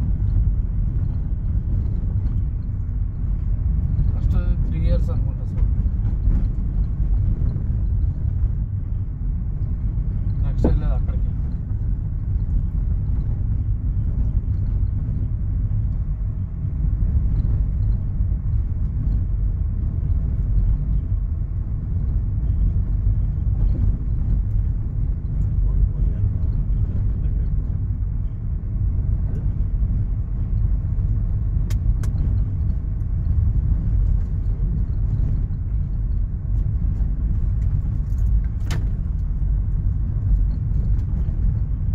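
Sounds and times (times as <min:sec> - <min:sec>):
car driving rumble inside cabin: 0:00.0 - 0:41.9.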